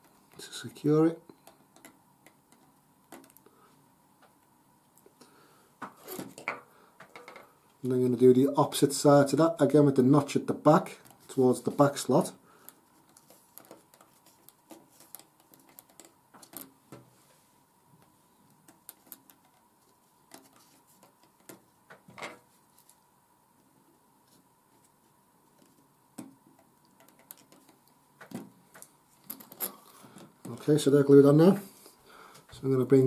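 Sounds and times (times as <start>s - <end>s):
faint steady thin hum: 0.0s - 33.0s.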